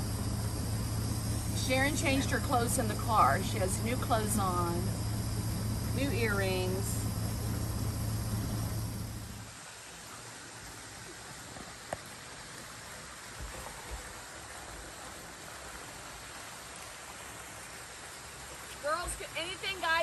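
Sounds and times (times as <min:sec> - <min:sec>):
low motor hum: 0:00.0 - 0:09.6.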